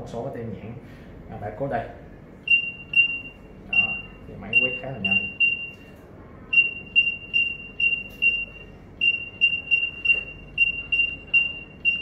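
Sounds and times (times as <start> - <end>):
barcode scanner beeps: 2.5 - 5.9, 6.5 - 12.0.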